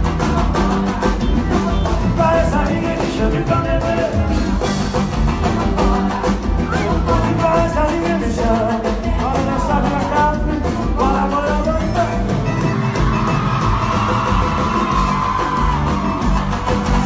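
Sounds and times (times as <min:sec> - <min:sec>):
person singing: 0:00.0 - 0:12.6
live band through a pa: 0:00.0 - 0:17.0.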